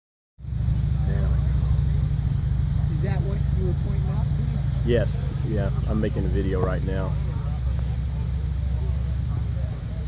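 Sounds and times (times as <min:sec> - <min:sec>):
faint voices talking: 0:00.6 - 0:10.0.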